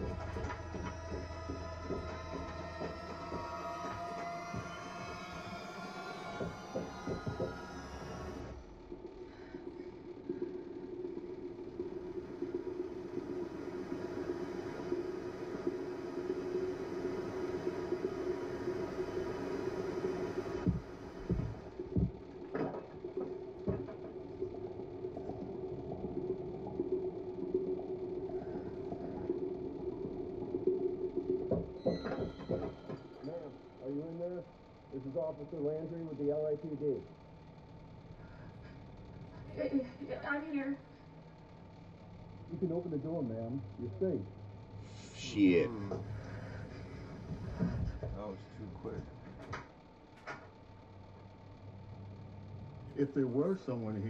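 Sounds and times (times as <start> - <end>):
steady low drone: 0.0 - 41.0
dull thumps: 20.6 - 24.2.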